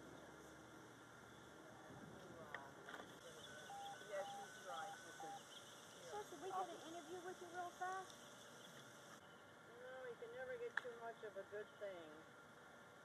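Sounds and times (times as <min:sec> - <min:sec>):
distant voices: 0:00.0 - 0:12.2.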